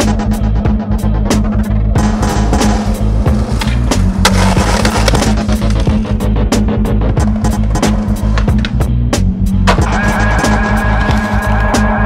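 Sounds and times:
loud background music: 0.0 - 12.0
skateboard wheels rolling on concrete: 1.6 - 12.0
skateboard clack: 2.2 - 6.1, 7.2 - 8.9.

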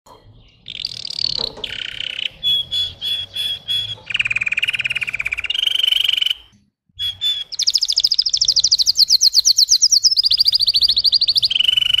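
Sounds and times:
canary singing trills: 0.3 - 12.0.

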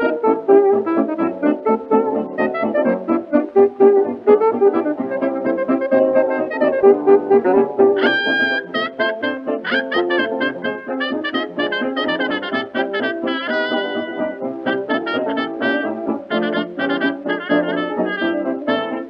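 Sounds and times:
dance orchestra with brass: 0.0 - 19.0.

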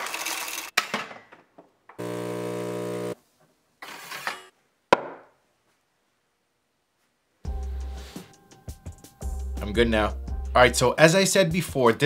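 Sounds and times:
espresso machine buzzing: 2.0 - 3.2.

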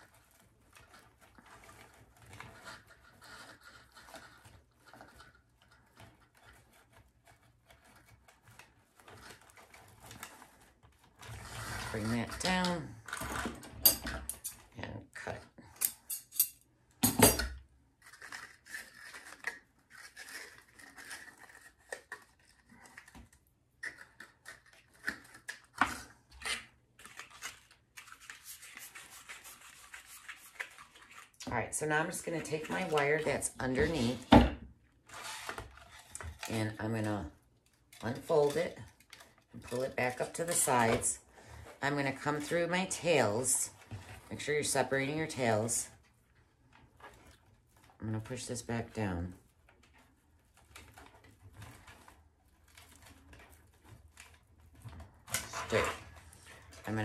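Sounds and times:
wired ribbon rustling and crinkling: 0.0 - 13.6, 18.0 - 57.0.

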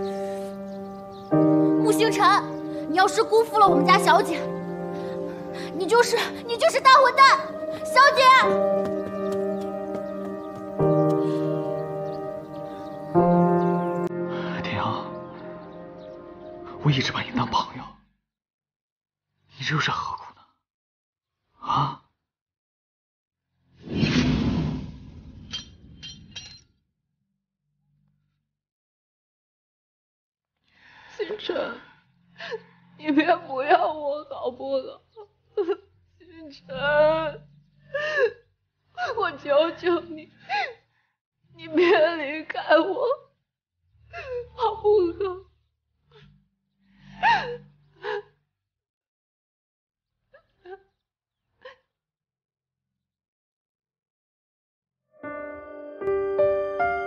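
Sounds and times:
woman sobbing: 37.9 - 38.4, 47.2 - 48.3.

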